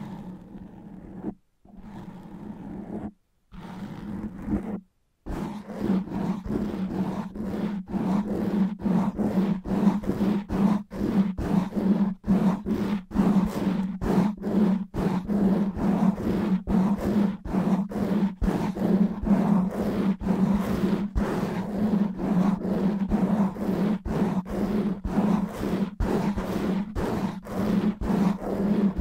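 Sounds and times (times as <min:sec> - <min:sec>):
fingernails scratching microphone: 0:00.0 - 0:29.0.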